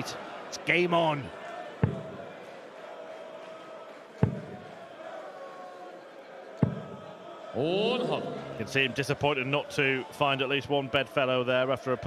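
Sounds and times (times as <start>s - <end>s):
crowd humming: 6.7s - 9.4s.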